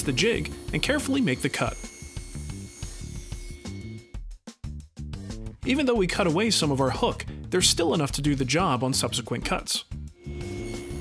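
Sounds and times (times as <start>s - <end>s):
table saw cutting wood: 0.0s - 4.2s, 10.2s - 11.0s
background music with beat: 3.2s - 7.6s.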